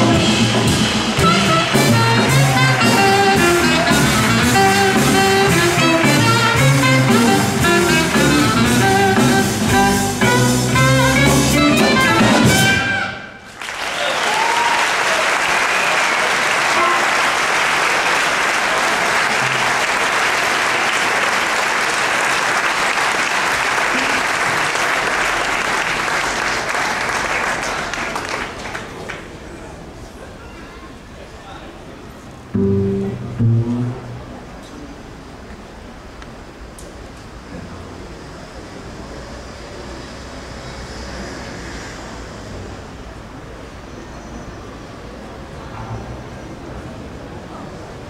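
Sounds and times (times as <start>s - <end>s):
jazz quartet playing: 0.0s - 13.4s, 32.5s - 34.7s
audience applauding: 1.2s - 8.2s, 13.5s - 29.5s.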